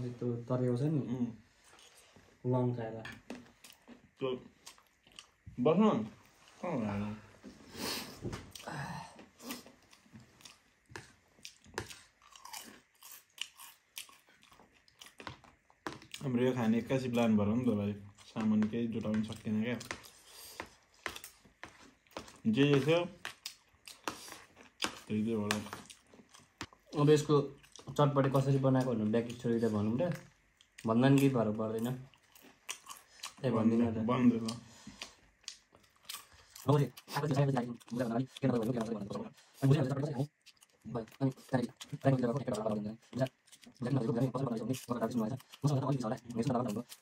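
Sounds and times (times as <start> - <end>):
chewing and crunching snack: 3.1 - 5.4, 8.5 - 17.3, 18.1 - 28.0, 28.7 - 47.0.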